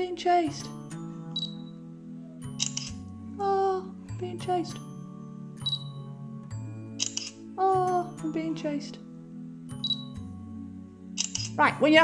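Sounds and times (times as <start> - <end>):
background music: 0.0 - 12.0
camera shutter sound: 2.5 - 3.0, 7.0 - 7.4, 11.2 - 11.6.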